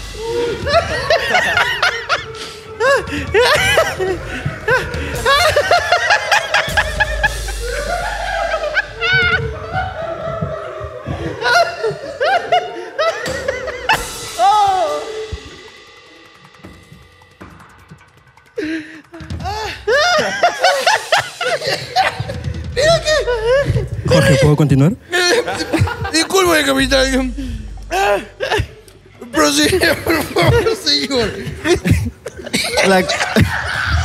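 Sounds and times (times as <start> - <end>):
men laughing: 0.0 - 15.9, 18.4 - 34.0.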